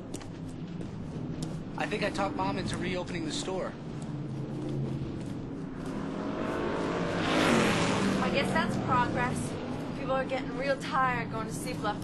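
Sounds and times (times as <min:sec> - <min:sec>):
vehicle passing by: 0:03.6 - 0:11.8.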